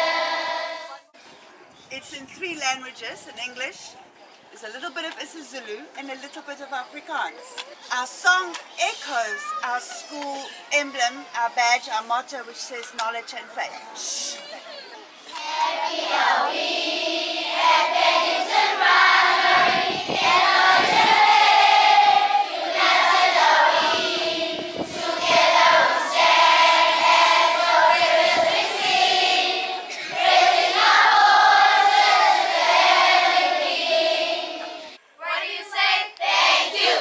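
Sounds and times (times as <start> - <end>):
children's choir singing: 0.0 - 1.0, 15.3 - 37.0.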